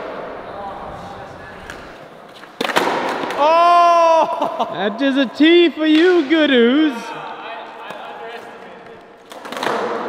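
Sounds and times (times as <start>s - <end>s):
skateboard wheels rolling on concrete: 0.0s - 3.5s.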